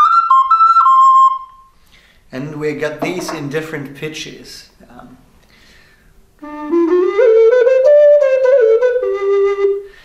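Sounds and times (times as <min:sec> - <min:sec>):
mellow vessel flute: 0:00.0 - 0:01.8, 0:06.4 - 0:10.0.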